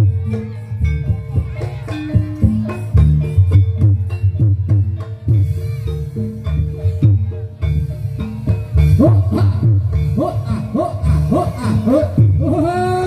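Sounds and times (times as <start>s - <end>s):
drums beating driving rhythm: 0.0s - 13.0s.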